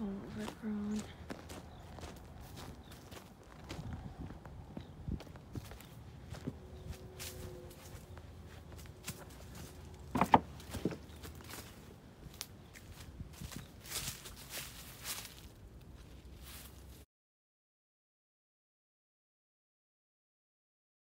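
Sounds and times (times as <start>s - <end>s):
footsteps crunching dry leaves: 0.4s - 17.0s.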